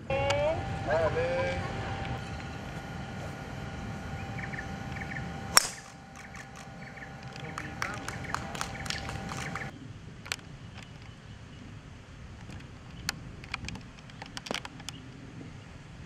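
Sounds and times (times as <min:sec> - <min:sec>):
golf driver striking ball: 0:02.4 - 0:09.6.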